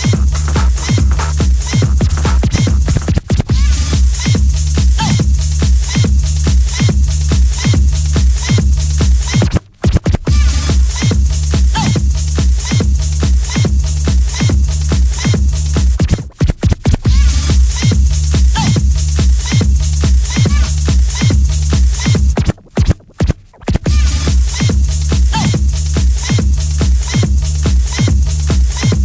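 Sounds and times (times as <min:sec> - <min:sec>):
hard techno beat: 0:00.0 - 0:29.0
kick drum: 0:00.0 - 0:29.0.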